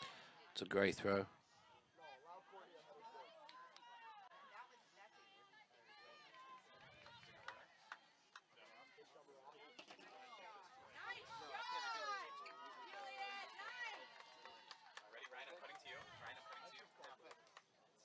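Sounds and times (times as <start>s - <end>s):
voices shouting on a field: 1.4s - 16.9s.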